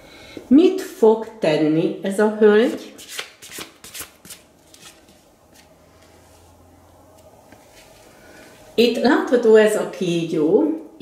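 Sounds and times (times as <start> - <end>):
cards shuffled by hand: 3.0 - 5.2.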